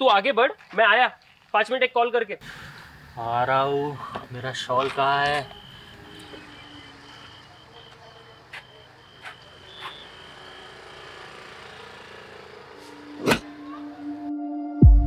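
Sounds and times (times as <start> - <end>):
traffic noise: 0.0 - 14.1
high beeping tone: 4.7 - 11.8.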